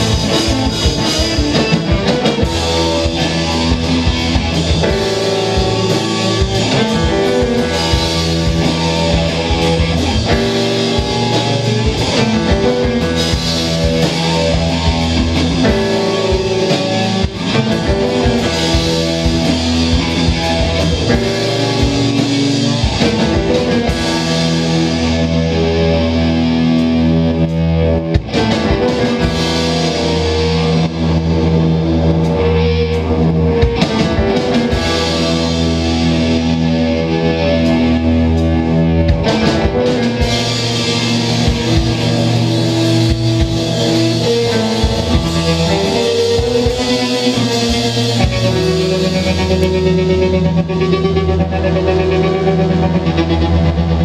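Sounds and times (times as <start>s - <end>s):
rock band playing live: 0.0s - 54.0s.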